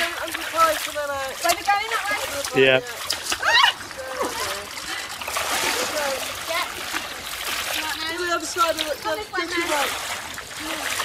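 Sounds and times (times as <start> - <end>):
legs wading through water: 0.0 - 11.0.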